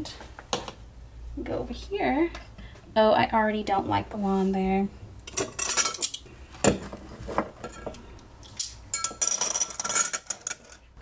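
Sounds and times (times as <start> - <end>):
glassware clinking on tile: 8.9 - 10.8.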